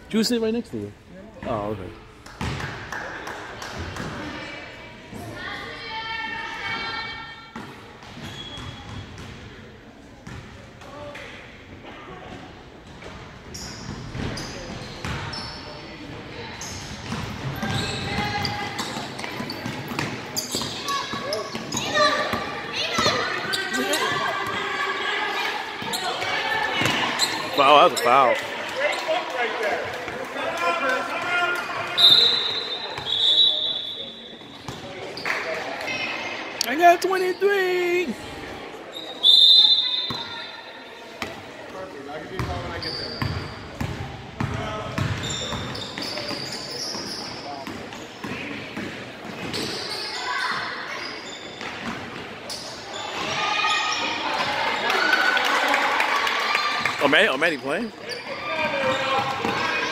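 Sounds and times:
referee's whistle: 32.0 - 34.4, 39.0 - 40.3.

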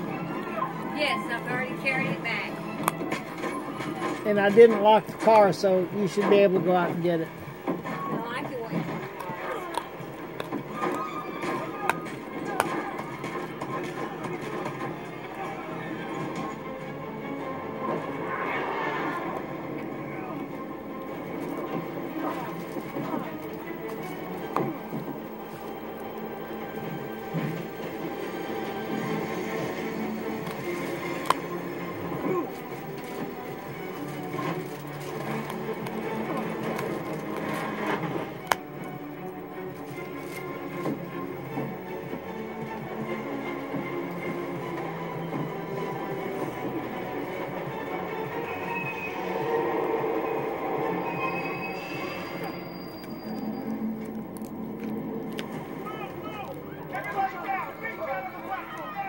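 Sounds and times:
television speech: 0.0 - 53.7, 54.9 - 59.0
television music: 0.0 - 59.0.

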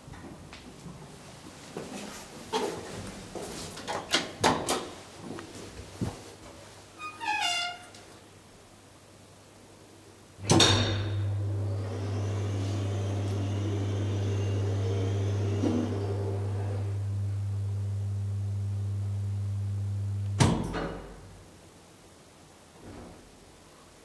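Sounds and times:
elevator running hum: 10.4 - 20.4.

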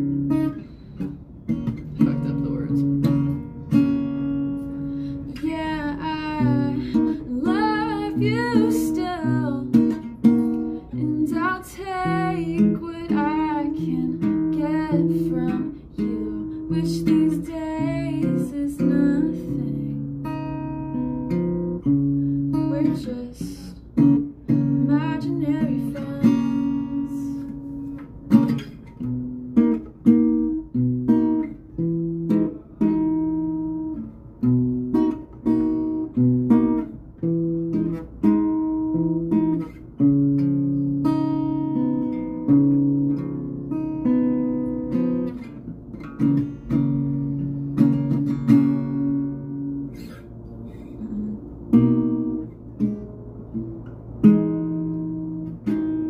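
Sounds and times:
acoustic guitar strummed and picked: 0.0 - 56.0
woman singing with vibrato: 5.3 - 10.0, 10.9 - 20.1, 22.5 - 23.8, 24.8 - 27.5, 50.8 - 51.6.

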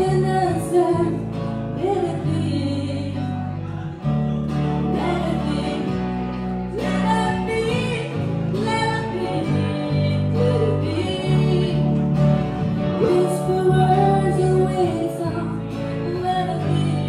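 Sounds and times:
woman singing: 0.0 - 3.6, 4.5 - 17.0
electric bass and guitar: 0.0 - 17.0.

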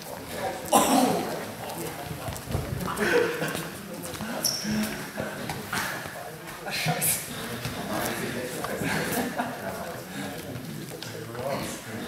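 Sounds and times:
men chattering and laughing: 0.0 - 12.0.

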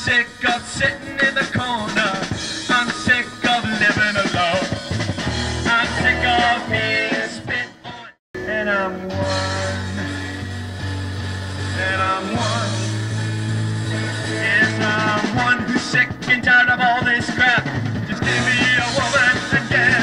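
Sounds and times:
bass guitar: 0.0 - 20.0
drums: 0.0 - 20.0
electric guitars: 0.0 - 20.0
person singing: 5.6 - 10.6, 11.7 - 13.1, 13.8 - 20.0.

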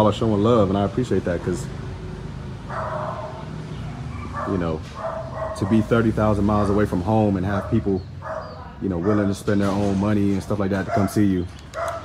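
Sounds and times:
dog barking: 2.6 - 6.0, 7.6 - 9.6, 10.7 - 12.0.

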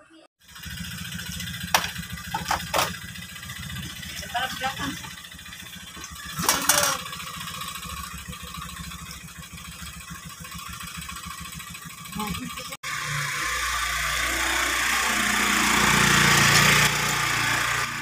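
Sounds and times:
scooter engine idling: 0.4 - 18.0.

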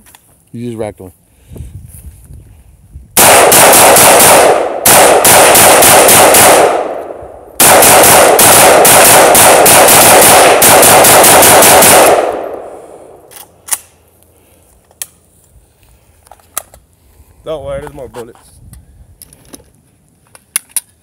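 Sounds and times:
rifle firing rapid shots: 3.2 - 12.8
gunshot echoes: 3.2 - 13.2.

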